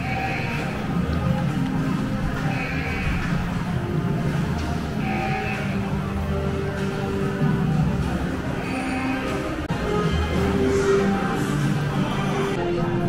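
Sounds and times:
music over sound system: 0.0 - 13.0.

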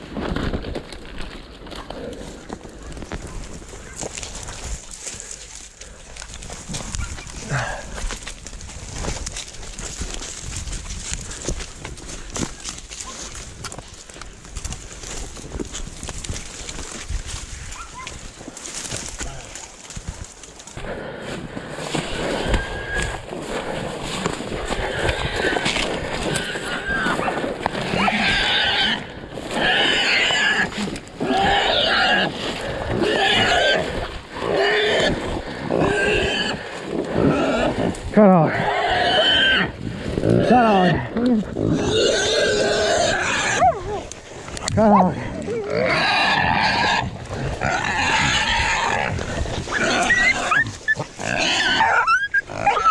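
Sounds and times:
footsteps crunching through dry brush: 0.0 - 52.8
wild hog squealing: 22.0 - 23.2, 24.6 - 52.9.

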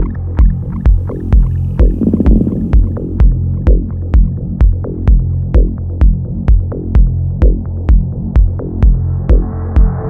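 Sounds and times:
electronic kick drum: 0.0 - 10.0
low bass hum: 0.0 - 10.0
fluttering texture: 1.8 - 3.0.

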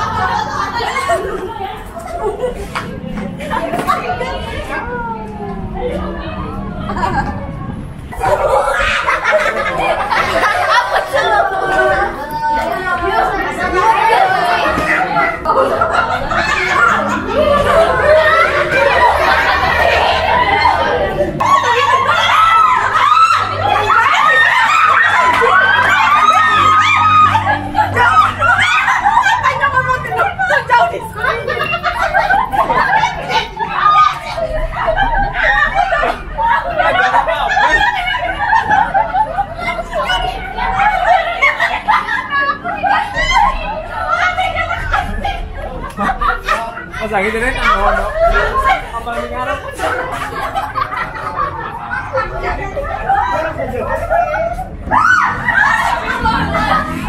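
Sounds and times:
small crowd chattering: 0.0 - 57.0
women laughing and talking: 0.0 - 57.0.

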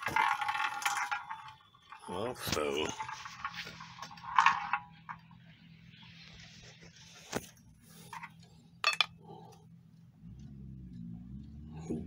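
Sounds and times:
loud short rattle: 0.0 - 5.3
spinning top scraping whir: 0.0 - 8.4.

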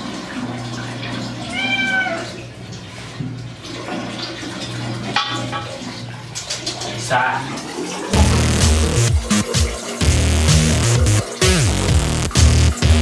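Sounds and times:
running and splashing water: 0.0 - 13.0
cat meowing in protest: 1.4 - 2.4.

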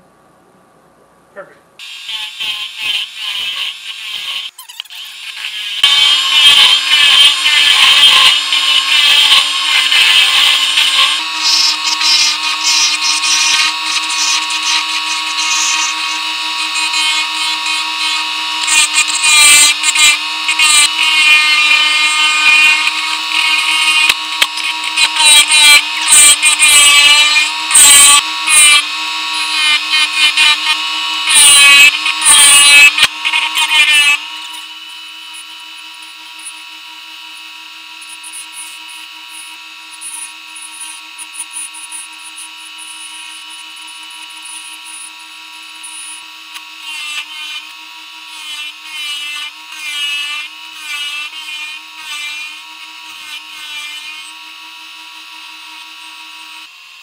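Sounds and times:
turning tool cutting wood: 1.8 - 57.0
lathe motor hum: 5.2 - 57.0.

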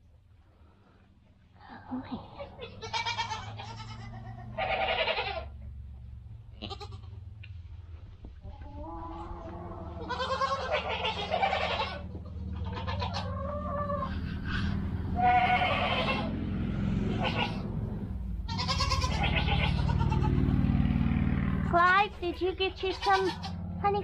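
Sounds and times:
steady low hum: 0.0 - 24.0
goats bleating: 2.4 - 5.5, 6.6 - 7.2, 9.1 - 13.3, 15.2 - 16.4, 17.1 - 17.6, 18.5 - 20.5, 22.8 - 23.6.

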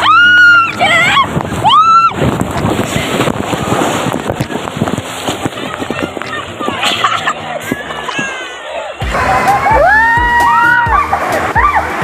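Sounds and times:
water splashing and sloshing: 0.0 - 12.0.

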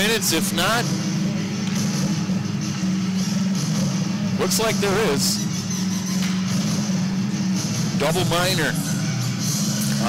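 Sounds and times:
music over public address: 0.0 - 10.0
steady low hum: 0.0 - 10.0.

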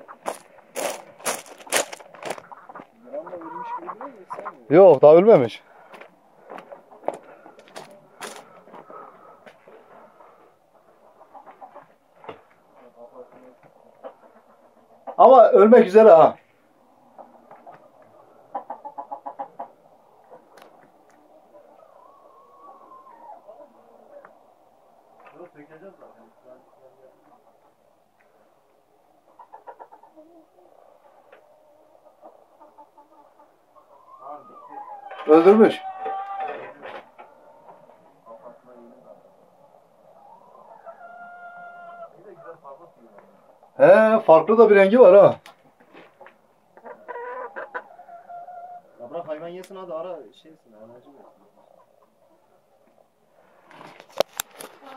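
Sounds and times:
hen clucking: 0.0 - 53.2.

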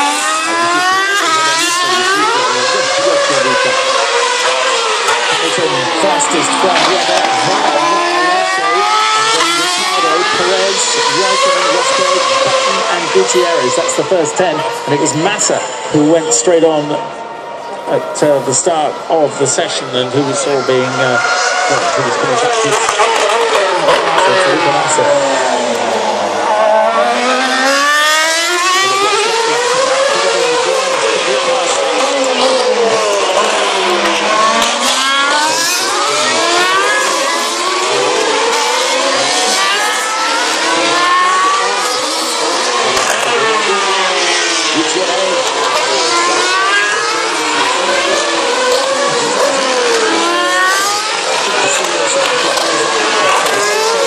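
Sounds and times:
racing car engines passing: 0.0 - 54.0.

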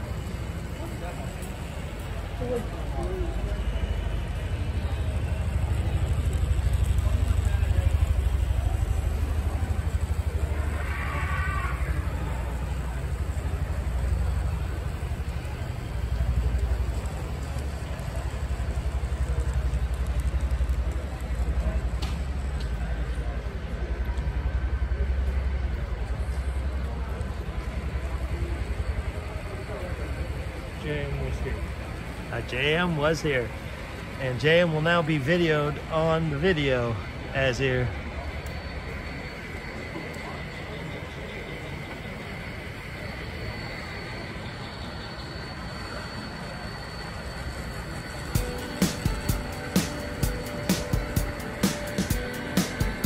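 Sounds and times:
distant voices: 0.0 - 53.0
hall background rumble: 0.0 - 53.0.

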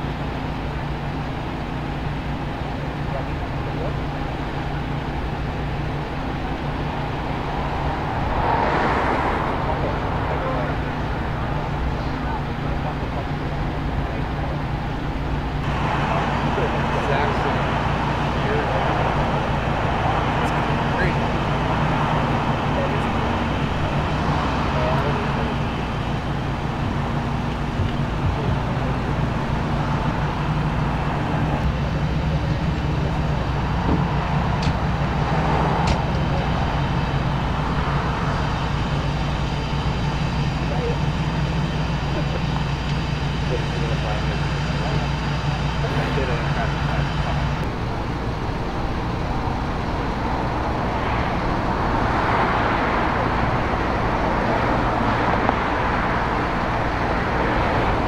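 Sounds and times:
indistinct voices: 0.0 - 58.0
road traffic noise: 0.0 - 58.0
vehicle engine idling: 0.0 - 58.0.

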